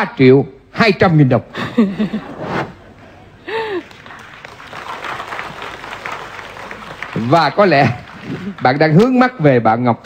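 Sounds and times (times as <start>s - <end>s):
audience applauding: 3.8s - 9.2s.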